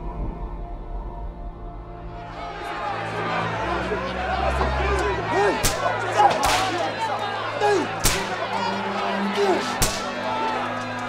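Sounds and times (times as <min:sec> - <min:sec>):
crowd crying and shouting: 0:02.0 - 0:11.0
whip cracking: 0:05.6 - 0:06.8, 0:08.0 - 0:08.3, 0:09.8 - 0:10.1.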